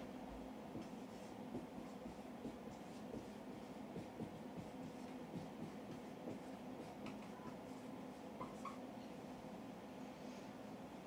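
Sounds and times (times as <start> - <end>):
low room hum: 0.0 - 11.0
marker scratching on whiteboard: 0.7 - 8.9.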